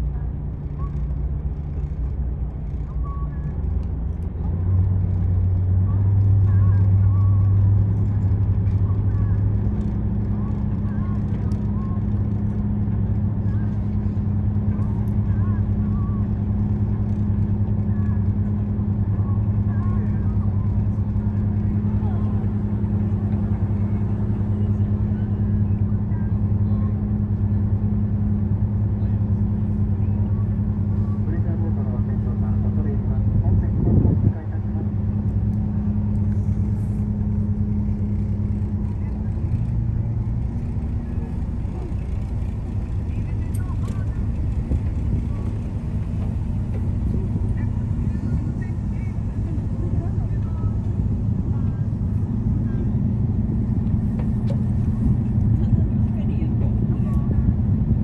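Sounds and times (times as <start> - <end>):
boat engine humming: 0.0 - 58.0.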